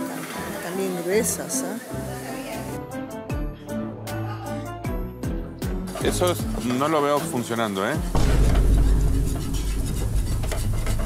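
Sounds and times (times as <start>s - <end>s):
whisk scraping a metal pan: 5.9s - 11.0s.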